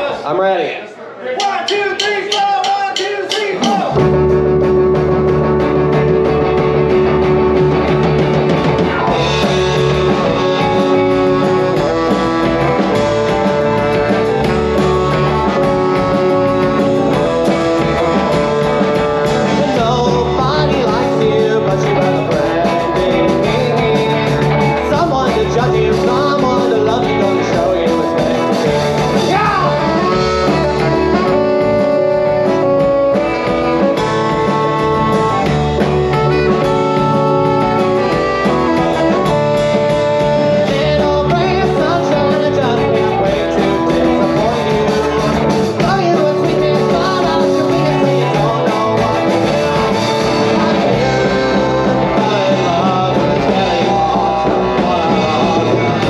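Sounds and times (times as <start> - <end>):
person singing: 1.4 - 4.2, 8.8 - 56.0
drum kit: 1.4 - 56.0
bass guitar: 3.2 - 56.0
electric guitar: 3.6 - 56.0.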